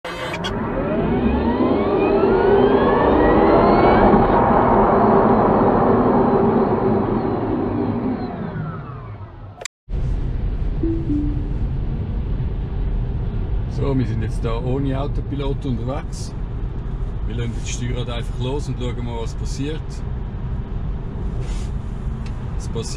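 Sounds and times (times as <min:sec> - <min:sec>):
road and tyre noise inside car: 0:00.1 - 0:22.9
sweeping pitch glides: 0:10.8 - 0:11.8.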